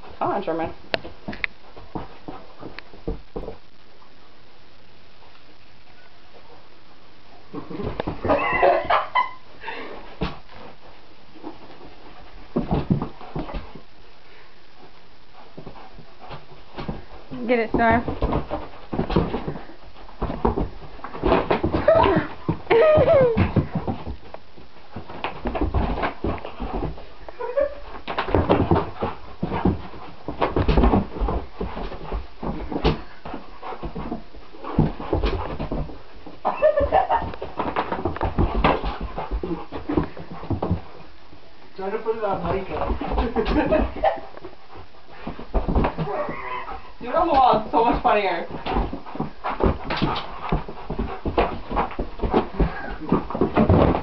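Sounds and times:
paws thumping on floor: 0.0 - 3.8, 7.5 - 54.0
dog panting: 27.8 - 36.4, 37.2 - 41.1, 42.0 - 54.0.

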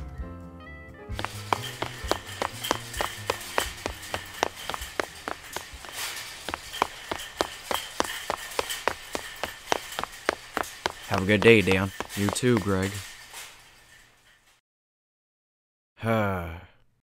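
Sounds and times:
quick footstep taps: 1.1 - 13.2.

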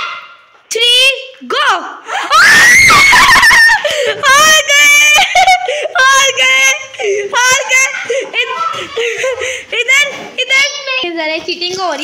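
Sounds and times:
child screaming excitedly: 2.3 - 5.2.

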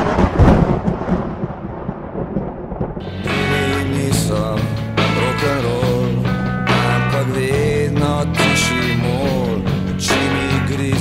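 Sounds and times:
loud crash with crackling rumble: 0.0 - 3.6.

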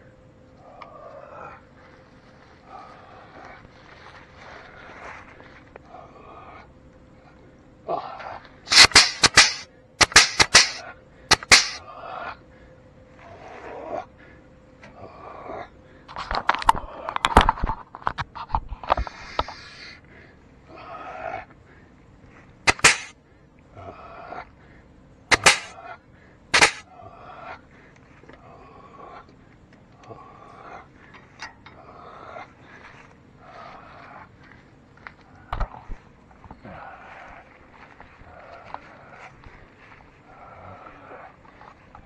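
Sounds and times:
air grease gun bursts: 8.7 - 11.8, 22.7 - 23.1, 25.3 - 25.7, 26.5 - 26.8
soft rasping noises: 26.6 - 42.0.

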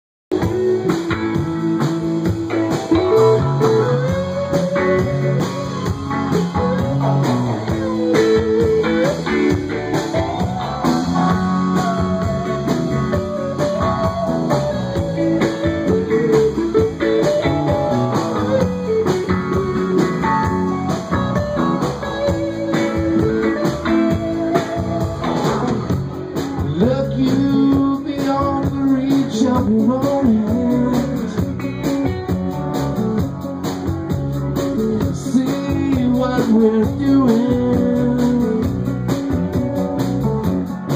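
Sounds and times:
drums: 0.3 - 40.9
electric guitars: 0.3 - 40.9.

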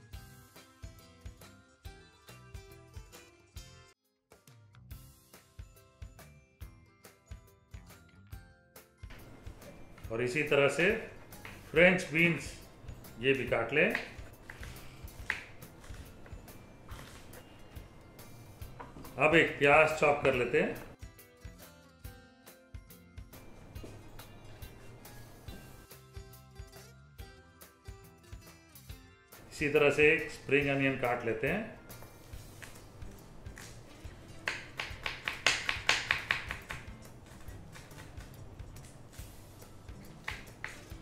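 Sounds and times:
knife striking cutting board: 34.4 - 38.1.

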